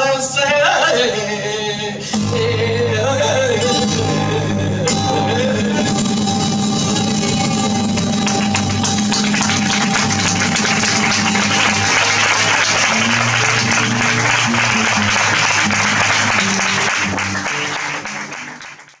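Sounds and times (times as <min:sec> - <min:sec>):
flamenco guitar: 0:00.0 - 0:19.0
audience applauding: 0:05.7 - 0:19.0.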